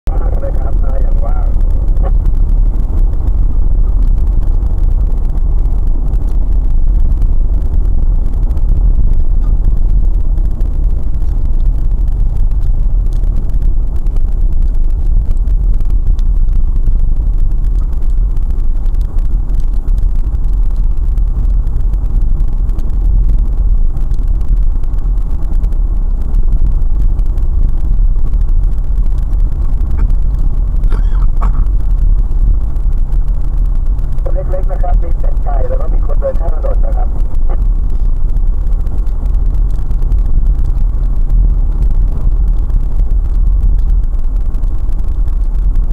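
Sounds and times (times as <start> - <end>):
car engine and road noise: 0.0 - 45.9.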